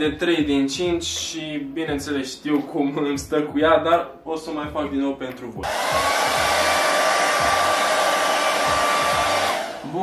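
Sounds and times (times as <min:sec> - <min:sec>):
hair dryer blowing air: 0:05.6 - 0:10.0
hair dryer motor whine: 0:05.6 - 0:10.0.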